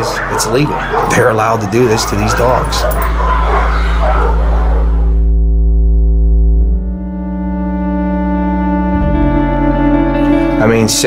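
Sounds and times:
dog barking and yipping: 0.0s - 5.2s
low droning tone: 2.2s - 10.6s.

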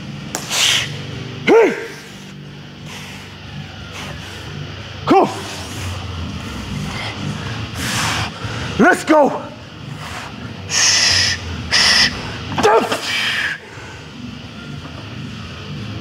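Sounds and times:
sharp forceful breaths: 0.4s - 1.2s, 1.8s - 4.7s, 5.4s - 8.8s, 9.9s - 14.2s
man shouting: 1.4s - 2.1s, 5.0s - 5.6s, 8.8s - 9.6s, 12.6s - 13.6s.

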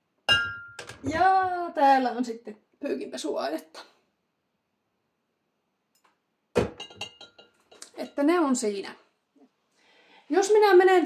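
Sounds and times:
glass bottles clinking: 0.3s - 1.0s, 6.6s - 7.8s.

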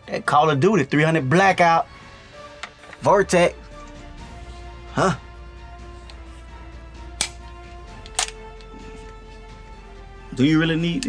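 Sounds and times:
background music held notes: 0.0s - 11.0s
rifle handling clicks: 7.2s - 8.7s.

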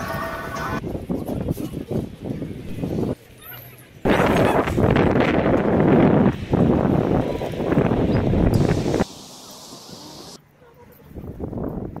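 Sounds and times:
wind buffeting microphone: 0.8s - 3.3s, 4.0s - 9.1s, 11.1s - 12.0s.

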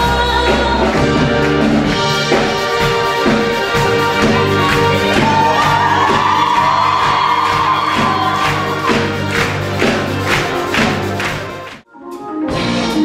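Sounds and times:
live concert music with beat: 0.0s - 13.0s.

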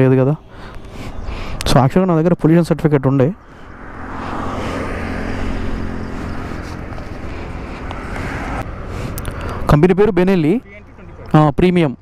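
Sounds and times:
highway traffic passing: 0.0s - 12.0s.

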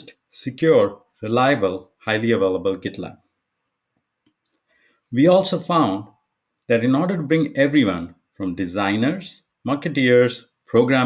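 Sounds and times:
man speaking: 0.0s - 3.3s, 5.1s - 11.0s.

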